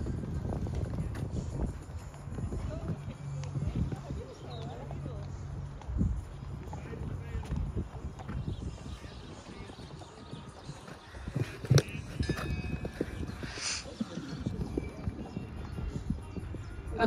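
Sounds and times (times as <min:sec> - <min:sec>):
horse hoofbeats on sand: 0:00.0 - 0:17.0.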